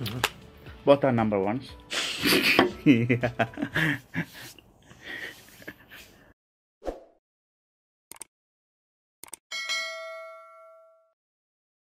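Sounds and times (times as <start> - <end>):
notification bell ding: 9.5 - 11.2.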